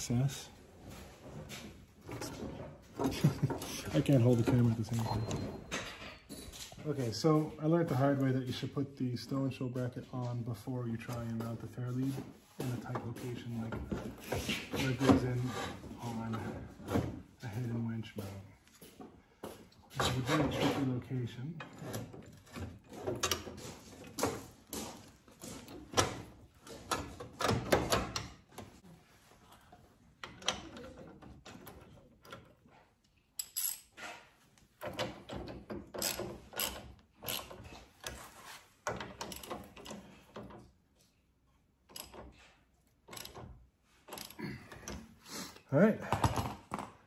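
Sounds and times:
metallic clicks and knocks: 33.4s - 41.2s, 41.8s - 45.0s.

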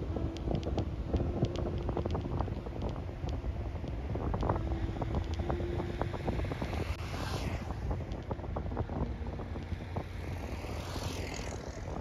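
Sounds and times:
vehicle driving on road: 0.0s - 12.0s
wind noise on microphone: 0.0s - 12.0s.

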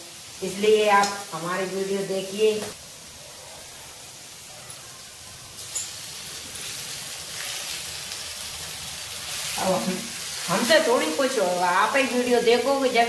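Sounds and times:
peas sizzling in a pan: 0.0s - 13.0s.

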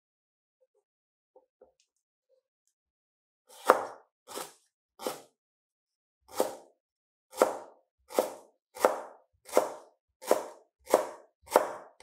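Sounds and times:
knife slicing on cutting board: 3.5s - 5.4s, 6.3s - 6.7s.

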